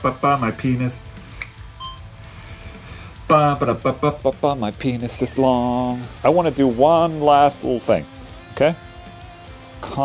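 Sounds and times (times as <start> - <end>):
short electronic beep: 1.8 - 2.1.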